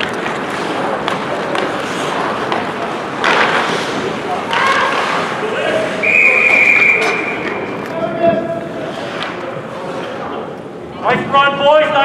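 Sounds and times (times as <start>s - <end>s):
voices: 3.2s - 12.0s
referee's whistle blast: 6.0s - 7.7s.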